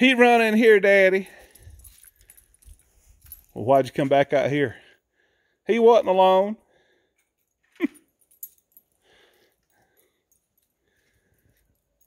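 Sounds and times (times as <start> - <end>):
collar tags jingling: 0.1 - 4.7, 7.2 - 12.0.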